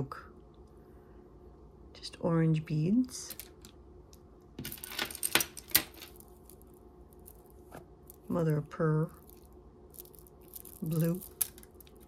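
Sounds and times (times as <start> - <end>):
jewelry clinking: 4.6 - 12.0.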